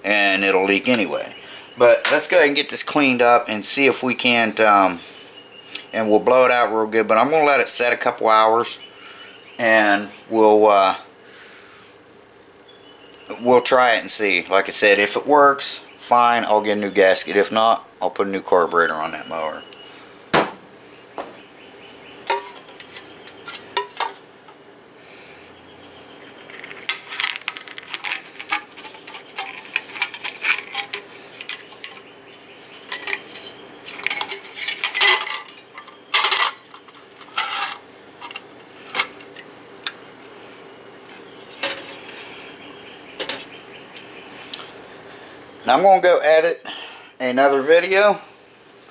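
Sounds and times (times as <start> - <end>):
small metal parts clinking: 26.4 - 40.0.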